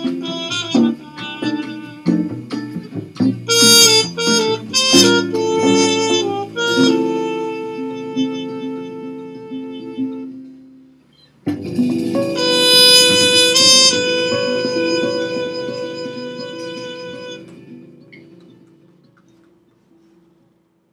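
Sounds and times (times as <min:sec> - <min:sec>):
accompaniment chord: 0:00.0 - 0:10.9, 0:11.5 - 0:19.5
muted cornet: 0:00.0 - 0:20.4.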